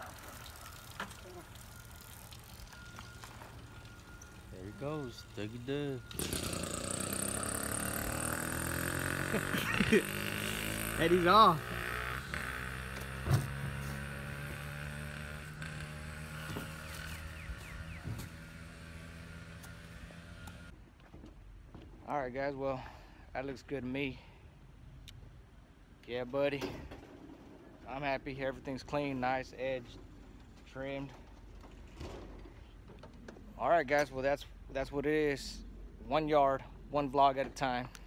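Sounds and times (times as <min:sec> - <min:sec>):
small motorbike engine pulling away: 0:00.0 - 0:20.7
faint outdoor background noise: 0:00.0 - 0:38.0.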